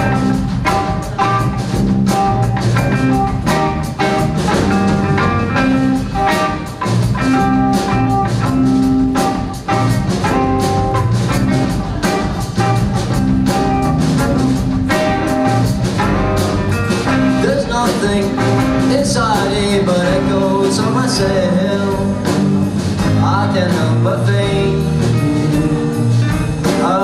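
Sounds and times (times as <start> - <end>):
drums steady beat: 0.0 - 27.0
live pop-rock band playing: 0.0 - 27.0.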